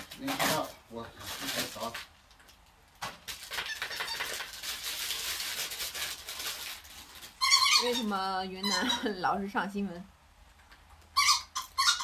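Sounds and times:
dog toy ball squeaking: 3.5 - 4.5, 7.4 - 9.2, 11.2 - 12.0.

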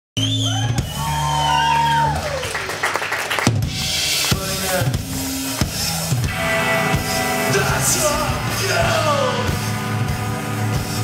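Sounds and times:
electric guitars sliding notes: 3.7 - 11.0.

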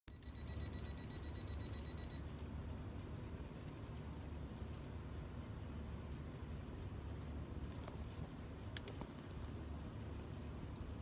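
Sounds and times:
rapid high electronic beeping: 0.1 - 2.2
steady low hum: 0.1 - 11.0.

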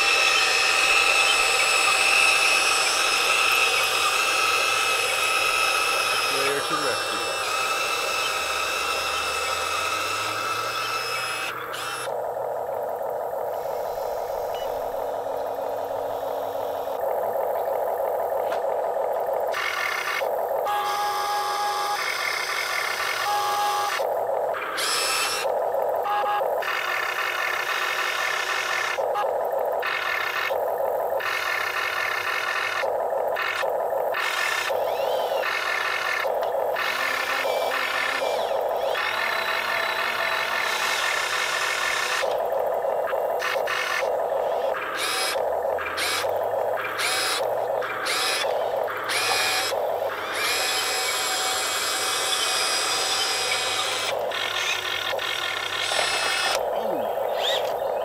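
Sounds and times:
small electric motors whining: 0.0 - 58.0.

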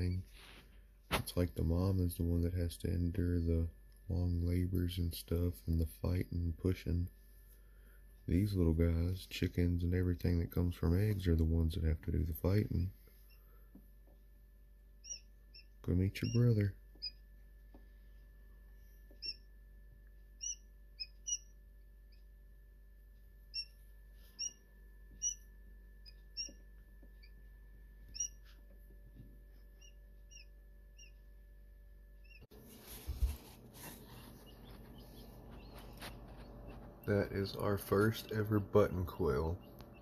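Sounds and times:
steady hum: 0.0 - 40.0
rustling handling noise: 0.2 - 1.4, 32.5 - 38.3
chicks peeping: 15.0 - 17.2, 20.4 - 21.5, 25.2 - 25.4, 26.0 - 26.6, 28.1 - 28.4, 32.2 - 40.0.

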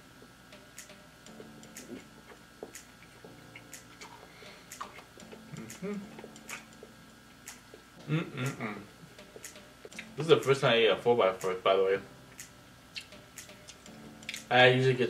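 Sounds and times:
man chewing: 1.3 - 10.2, 12.9 - 14.5
lip smacks: 3.6 - 6.9, 12.9 - 14.5
man humming: 5.3 - 6.6, 8.0 - 9.0.

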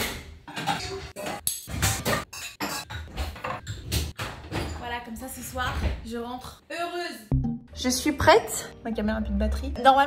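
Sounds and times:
dishes and cutlery clinking: 0.0 - 5.0
background music: 6.7 - 10.0.

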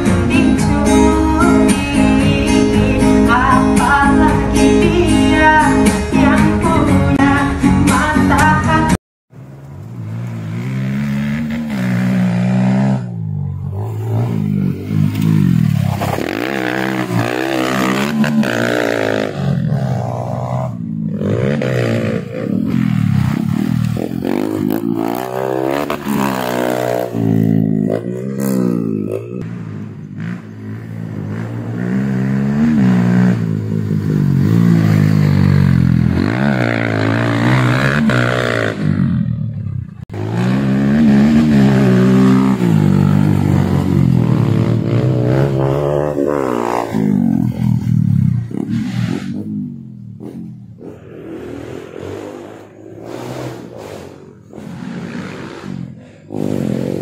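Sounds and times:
dirt bike engine revving: 10.0 - 57.0.

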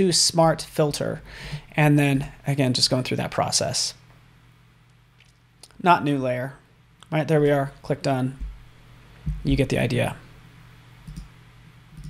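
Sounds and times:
faint computer mouse clicks: 11.0 - 11.3.

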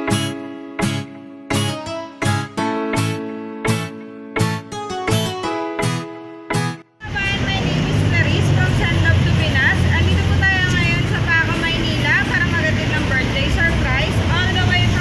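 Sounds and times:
street traffic rumble: 7.0 - 15.0
woman talking: 7.0 - 15.0.

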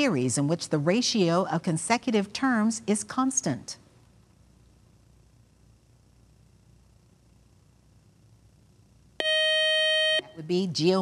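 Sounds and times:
electronic buzzer beep: 9.2 - 10.4.

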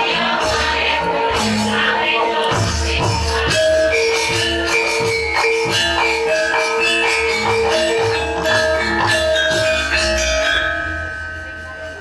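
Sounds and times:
gamelan ensemble playing: 0.0 - 12.0.

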